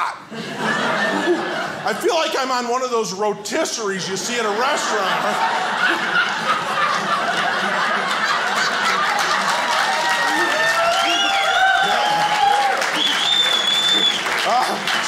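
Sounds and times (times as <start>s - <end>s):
audience laughing: 0.2s - 2.5s, 3.8s - 15.0s
audience clapping: 6.5s - 15.0s.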